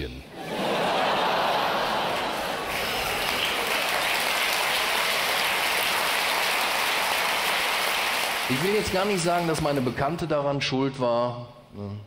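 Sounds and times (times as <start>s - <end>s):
audience applauding: 0.4s - 10.2s.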